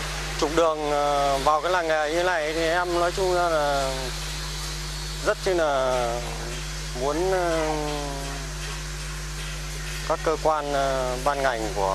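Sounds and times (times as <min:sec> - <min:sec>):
even hiss: 0:00.0 - 0:11.9.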